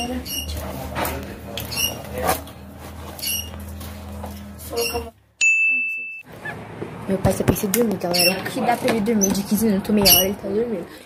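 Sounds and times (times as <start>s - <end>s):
low steady hum: 0.0s - 7.9s
high-pitched beep: 4.7s - 6.3s.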